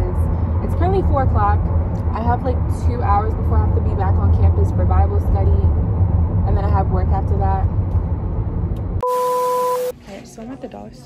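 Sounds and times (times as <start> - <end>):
car cabin road rumble: 0.0 - 9.0
two-tone electronic beep: 9.0 - 9.9.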